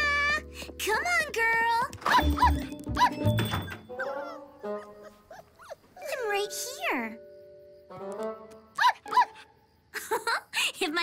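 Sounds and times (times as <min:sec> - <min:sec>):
light background music: 0:00.0 - 0:09.3
cartoon puppy yips and whines: 0:02.0 - 0:03.4, 0:08.8 - 0:09.5.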